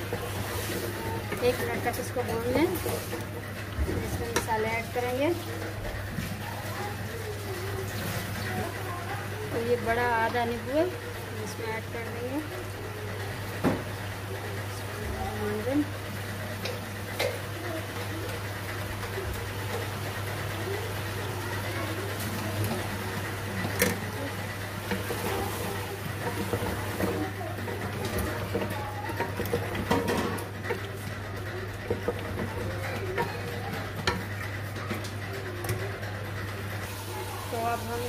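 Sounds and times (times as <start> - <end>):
faint sizzle: 0.0 - 38.0.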